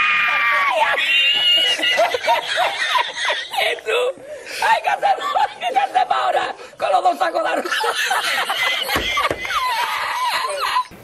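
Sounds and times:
man laughing hysterically: 0.6s - 4.0s, 4.6s - 6.6s, 7.4s - 10.9s.

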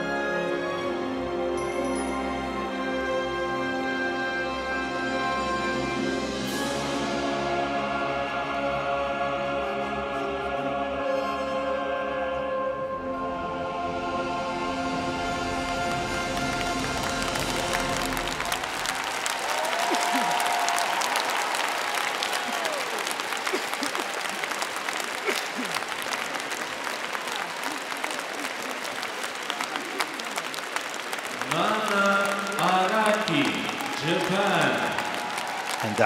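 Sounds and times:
skating program music: 0.0s - 19.0s
arena crowd applauding: 15.5s - 36.0s
man's voice: 31.4s - 35.1s, 35.8s - 36.0s.

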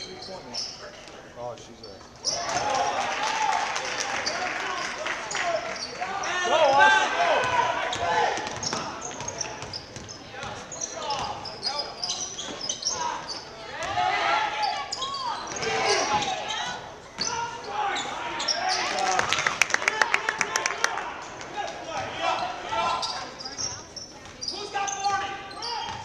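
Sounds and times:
sneakers squeaking: 0.0s - 2.7s, 4.1s - 19.3s, 21.2s - 26.0s
voices of players and spectators: 0.0s - 26.0s.

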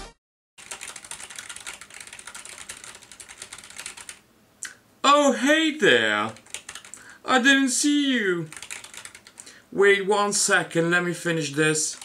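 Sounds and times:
typing on computer keyboard: 0.6s - 4.2s, 6.3s - 7.0s, 8.5s - 9.5s
man talking: 5.0s - 6.4s, 7.2s - 8.6s, 9.7s - 12.0s.

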